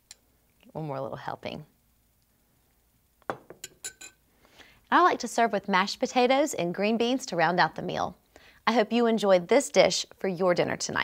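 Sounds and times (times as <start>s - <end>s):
metal spoon clinking on glass bowl: 3.3s - 4.2s.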